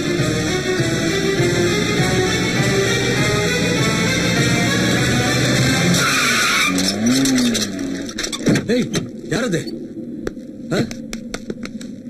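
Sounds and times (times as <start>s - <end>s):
film music: 0.0s - 6.8s
car tyres screeching: 0.0s - 10.0s.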